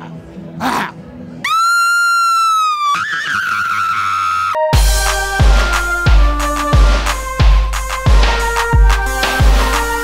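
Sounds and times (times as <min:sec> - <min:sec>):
high-pitched scream: 0:01.4 - 0:04.7.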